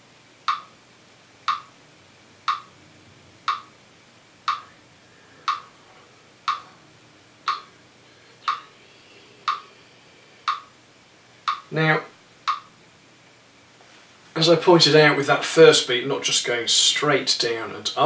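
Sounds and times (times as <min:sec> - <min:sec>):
metronome ticking: 0:00.4 - 0:00.8, 0:01.4 - 0:01.8, 0:02.4 - 0:02.8, 0:03.4 - 0:03.7, 0:04.4 - 0:04.7, 0:05.4 - 0:05.7, 0:06.4 - 0:06.7, 0:07.4 - 0:07.8, 0:08.4 - 0:08.7, 0:09.4 - 0:09.7, 0:10.4 - 0:10.8, 0:11.4 - 0:12.7.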